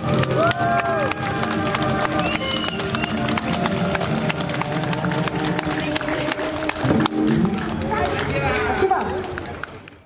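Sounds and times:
street crowd talking: 0:00.0 - 0:10.0.

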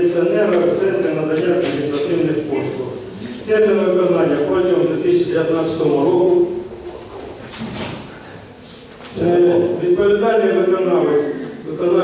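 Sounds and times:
man talking: 0:00.0 - 0:06.8, 0:09.2 - 0:12.0.

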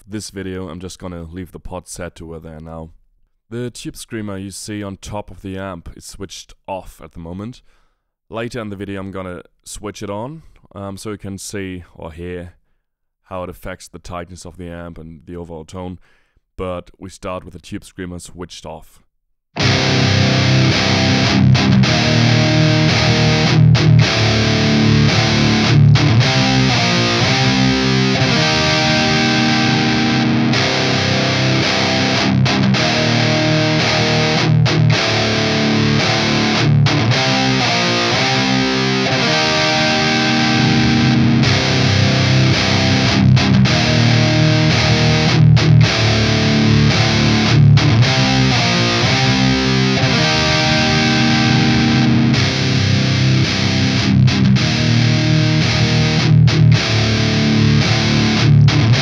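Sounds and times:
distorted electric guitar riff: 0:19.6 - 0:59.0.

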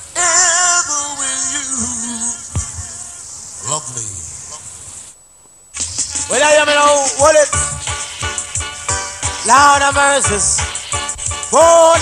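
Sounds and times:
dancehall music with voice: 0:00.0 - 0:03.3, 0:06.1 - 0:12.0
tape hiss: 0:00.0 - 0:12.0.

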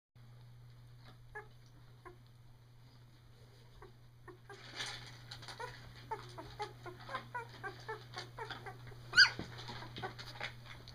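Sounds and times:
steady low hum: 0:00.2 - 0:10.9
puppies squeaking: 0:01.3 - 0:02.2, 0:03.7 - 0:10.5.

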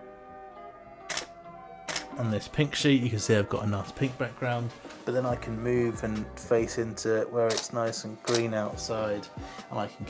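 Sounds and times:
background music: 0:00.0 - 0:10.0
camera shutter clicking: 0:01.1 - 0:02.1, 0:07.5 - 0:07.7.

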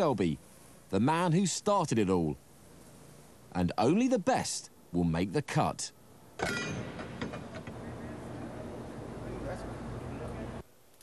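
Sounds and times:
mechanical hum: 0:00.0 - 0:11.0.

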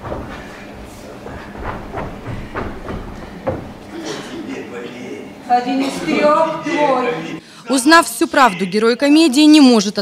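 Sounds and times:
footsteps on wooden stage: 0:00.0 - 0:03.9.

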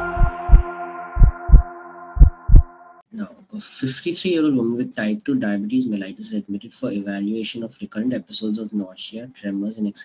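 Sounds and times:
low double thumps: 0:00.0 - 0:02.7
sustained synth chord: 0:00.0 - 0:03.0.

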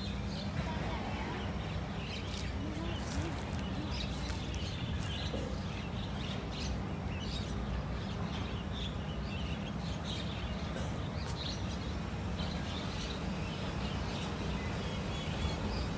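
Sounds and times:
birds chirping: 0:00.0 - 0:15.9.

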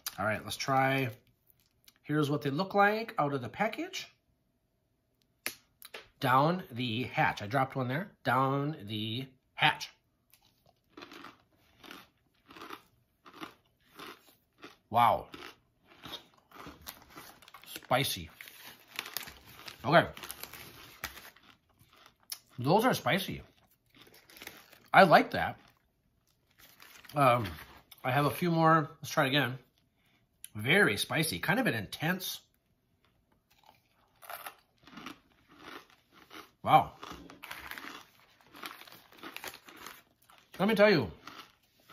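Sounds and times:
chewing crunchy corn nuts: 0:09.8 - 0:28.0, 0:32.4 - 0:41.9.

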